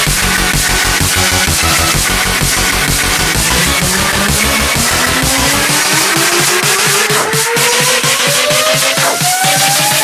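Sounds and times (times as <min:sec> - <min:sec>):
electronic dance music build-up: 0:00.0 - 0:10.0
fast repeating hits: 0:00.0 - 0:10.0
rising synth sweep: 0:00.0 - 0:10.0.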